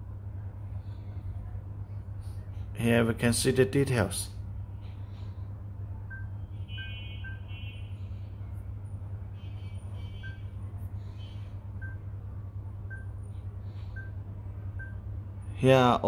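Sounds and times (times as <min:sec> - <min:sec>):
low background hum: 0:00.0 - 0:16.0
faint high beeps: 0:06.0 - 0:08.0, 0:09.3 - 0:10.6, 0:11.2 - 0:12.2, 0:12.8 - 0:13.3, 0:13.9 - 0:14.2, 0:14.8 - 0:15.1.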